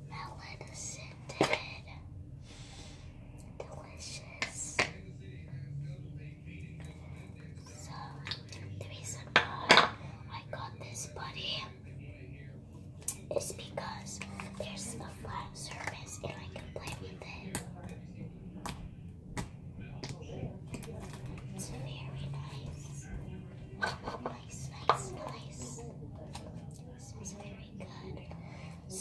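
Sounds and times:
soft whispering: 0:00.0 - 0:29.0.

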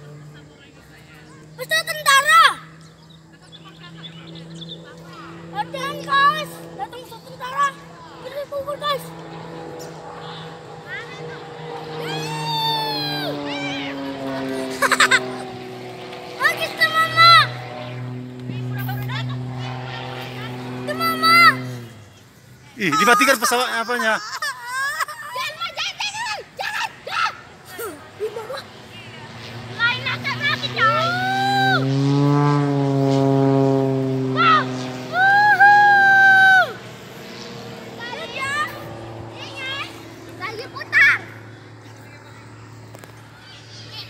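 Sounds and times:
distant plane engine drone: 0:00.0 - 0:44.0
propeller airplane flying overhead: 0:00.0 - 0:44.0
child's long high call: 0:12.0 - 0:15.4, 0:30.3 - 0:31.8, 0:34.4 - 0:36.8.

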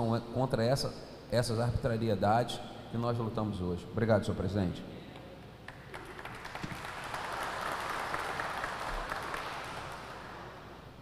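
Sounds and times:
audience applauding: 0:05.7 - 0:10.7.

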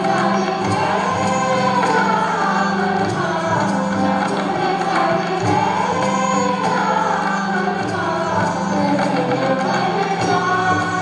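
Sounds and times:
group of voices singing: 0:00.0 - 0:11.0
sitars: 0:00.0 - 0:11.0
tabla drums: 0:00.0 - 0:11.0.

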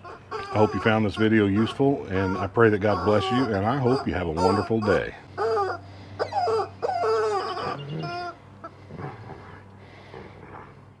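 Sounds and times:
squeaky dog toy squeaking: 0:00.0 - 0:08.4.

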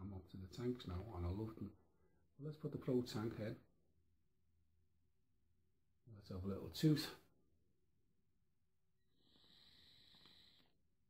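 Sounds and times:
airy e-cigarette inhale: 0:09.1 - 0:10.8.

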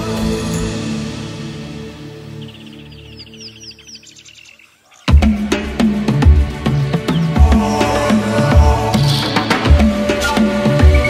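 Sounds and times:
soft background music: 0:00.0 - 0:11.0
small bird chirping: 0:02.3 - 0:05.5, 0:06.7 - 0:08.2.

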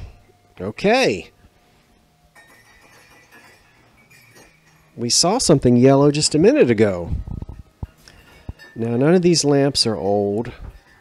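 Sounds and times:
low steady hum: 0:00.0 - 0:11.0
quiet music playing: 0:00.0 - 0:11.0.

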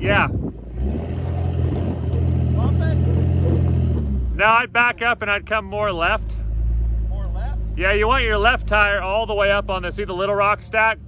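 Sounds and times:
engine running at low revs: 0:00.2 - 0:11.0.

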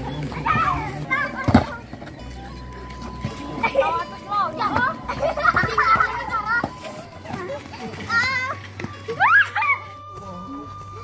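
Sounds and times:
children shouting: 0:07.8 - 0:10.0.

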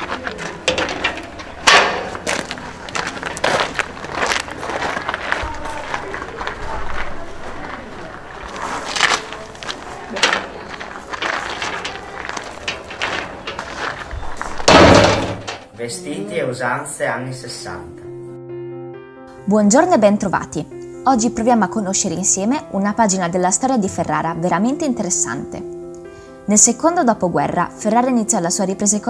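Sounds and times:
iron gate clanking: 0:00.0 - 0:03.1, 0:09.6 - 0:15.7
knocks and clatter: 0:00.0 - 0:03.9, 0:09.6 - 0:15.7
footsteps on gravel: 0:00.0 - 0:15.5.

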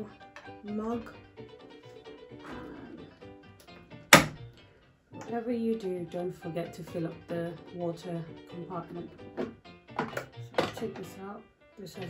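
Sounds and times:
plastic lid clacking shut: 0:09.4 - 0:11.1.

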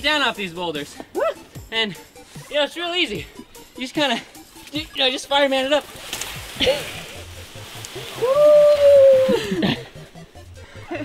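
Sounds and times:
person's long held cry: 0:08.2 - 0:09.6.

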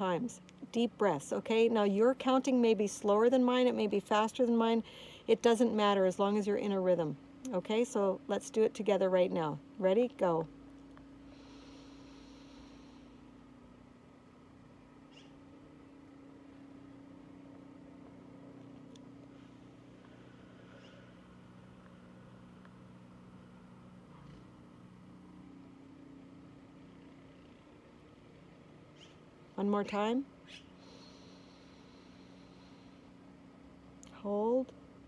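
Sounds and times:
faint steady hum: 0:00.0 - 0:35.0
deep breath in: 0:11.3 - 0:13.2.

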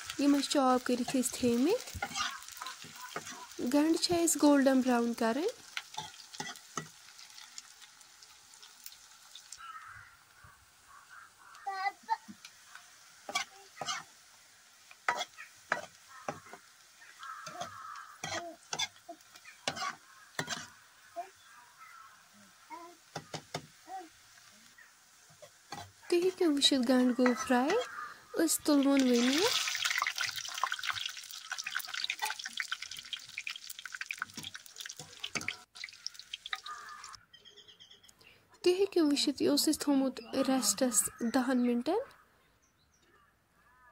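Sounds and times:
oil sizzling: 0:00.0 - 0:37.2
metal ladle scraping metal pan: 0:01.0 - 0:03.6, 0:17.4 - 0:20.7
wire skimmer lifting onions: 0:28.5 - 0:37.0.

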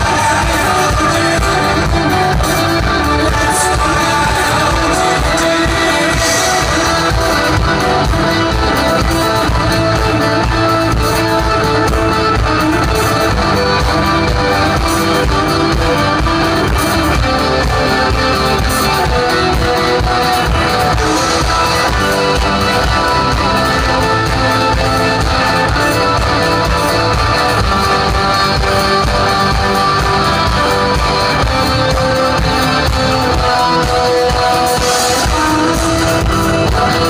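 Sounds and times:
live rock band playing: 0:00.0 - 0:37.0.

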